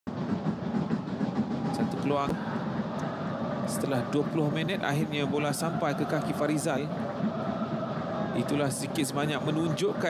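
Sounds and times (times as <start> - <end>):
stadium crowd din: 0.1 - 10.0.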